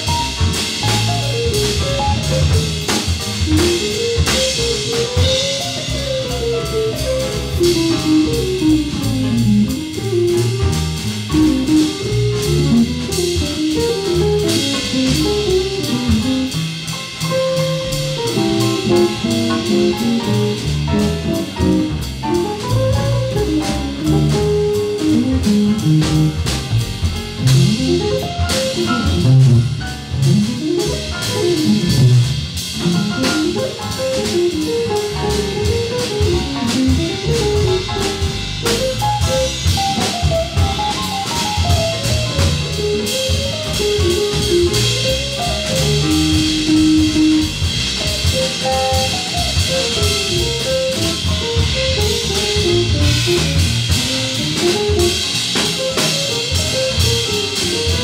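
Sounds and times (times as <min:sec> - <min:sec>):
jazz group playing: 0:00.0 - 0:58.0
plucked double bass: 0:00.0 - 0:58.0.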